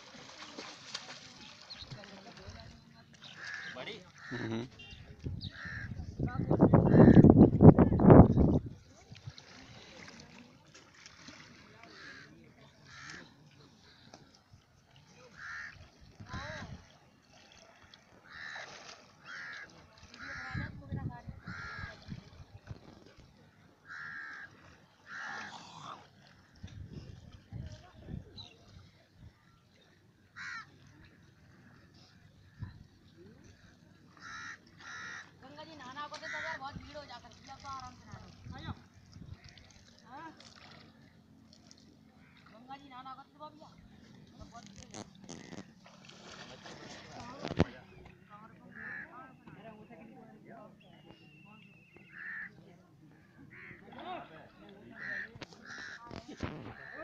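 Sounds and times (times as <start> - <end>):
crow cawing: 15.4 - 15.8, 18.2 - 20.5, 23.8 - 25.5, 30.4 - 30.7, 34.2 - 35.3, 55.0 - 56.0.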